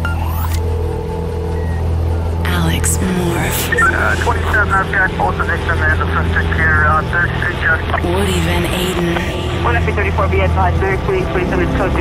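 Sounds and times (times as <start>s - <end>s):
music with low bass drone: 0.0s - 12.0s
radio voice chatter: 2.6s - 10.4s.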